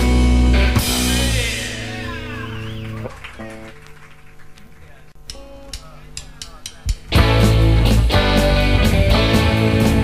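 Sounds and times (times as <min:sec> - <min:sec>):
drum taps: 0:05.2 - 0:07.2.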